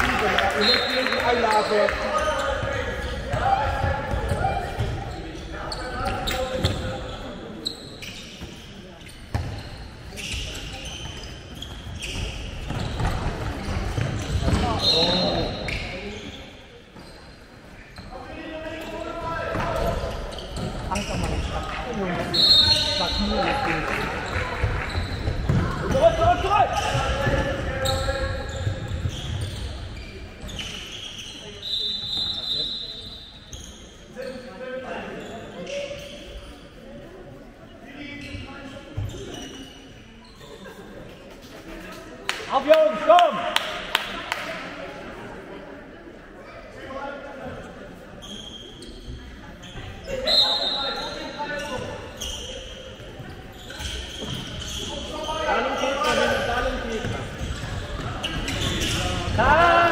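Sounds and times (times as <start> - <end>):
shoes squeaking on floor: 0.6 - 37.0, 37.8 - 41.9, 47.4 - 59.9.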